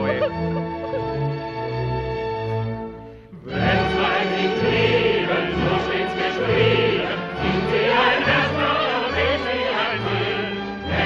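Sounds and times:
chorus singing: 0:03.3 - 0:11.0.

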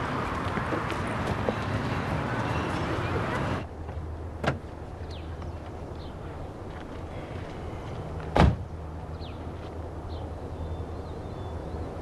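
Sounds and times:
car door clunk: 0:08.3 - 0:08.6.

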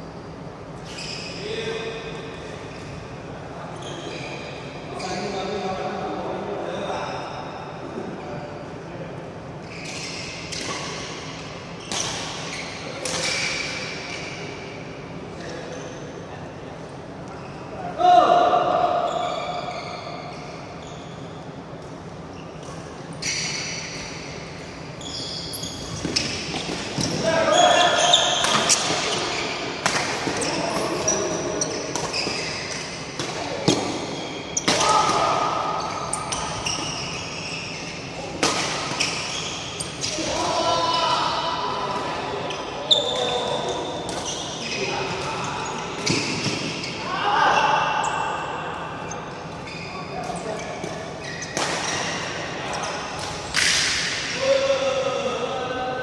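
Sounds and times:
players' voices: 0:26.2 - 0:36.8, 0:38.0 - 0:56.0.

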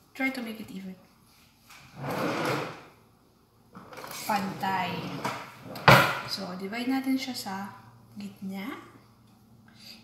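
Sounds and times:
kitchen drawer sliding: 0:01.9 - 0:02.9, 0:03.8 - 0:06.3.

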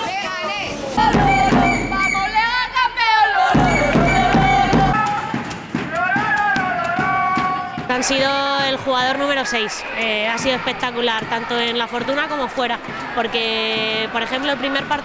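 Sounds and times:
supporters chanting and singing: 0:00.0 - 0:15.0
bass drum beats: 0:00.9 - 0:09.2.

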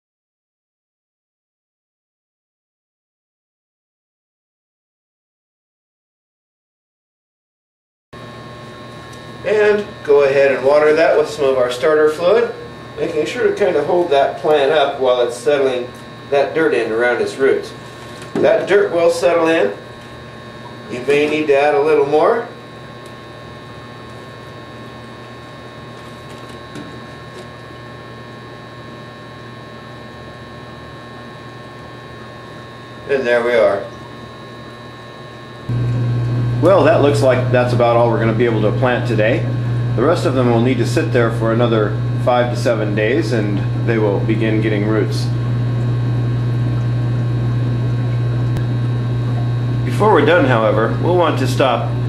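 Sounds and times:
mechanical hum: 0:08.2 - 0:52.0.

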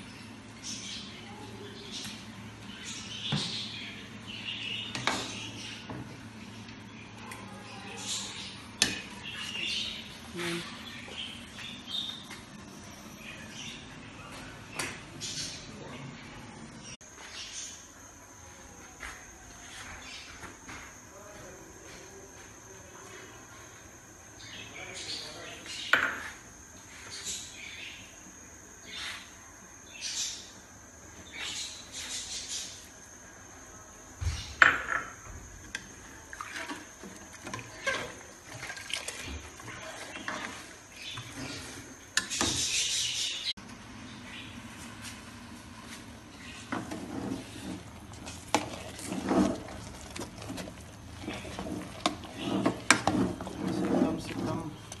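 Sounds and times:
ladle stirring sticky rice: 0:46.5 - 0:55.0.

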